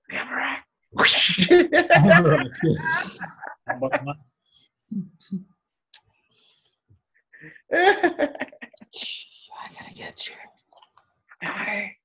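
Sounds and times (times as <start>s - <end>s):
person laughing: 1.1s - 4.2s, 7.7s - 8.8s.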